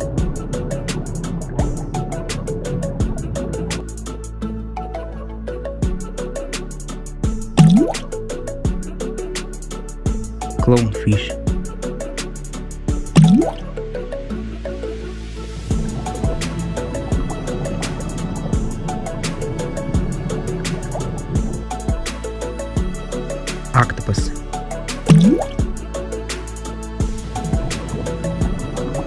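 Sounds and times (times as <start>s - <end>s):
background music with steady beat: 0.0s - 29.0s
water-drop bloop: 7.6s - 8.0s, 13.2s - 13.6s, 25.1s - 25.6s.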